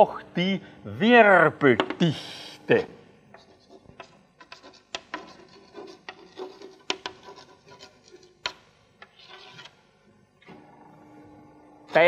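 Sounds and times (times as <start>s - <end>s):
chalk scratching on blackboard: 3.4s - 8.5s, 9.2s - 9.7s.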